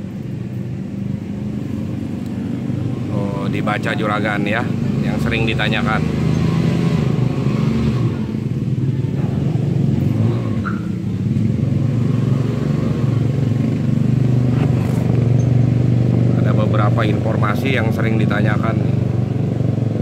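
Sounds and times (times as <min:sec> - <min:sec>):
engine running steadily: 0:00.0 - 0:20.0.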